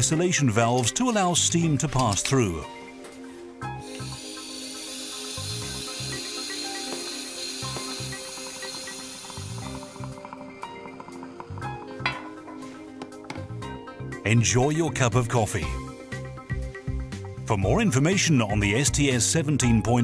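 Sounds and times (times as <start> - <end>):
background music: 0.0 - 20.0
steam hissing: 3.8 - 10.9.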